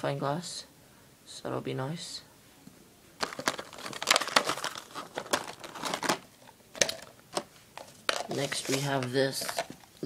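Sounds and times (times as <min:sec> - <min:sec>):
packaging crinkling and rustling: 0:03.2 - 0:10.0.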